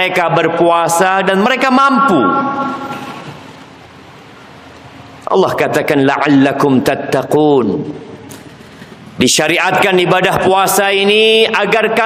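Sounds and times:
word echo: 0.0 - 3.4
room noise hiss: 0.0 - 12.0.

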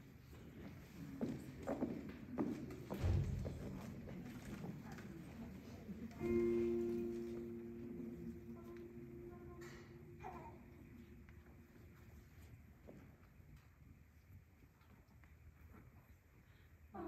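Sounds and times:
footsteps on wooden stage: 0.4 - 5.6
piano notes ringing: 6.1 - 12.5.

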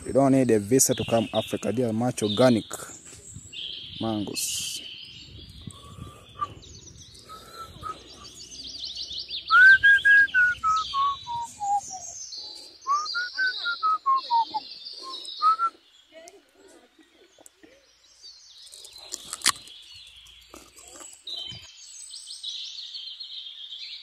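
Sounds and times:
birds twittering: 0.0 - 24.0
bird whistling descending phrase: 9.5 - 12.1.

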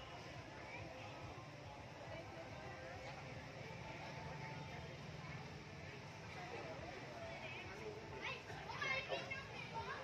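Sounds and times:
crowd talking: 0.0 - 10.0
children's voices: 6.1 - 10.0.

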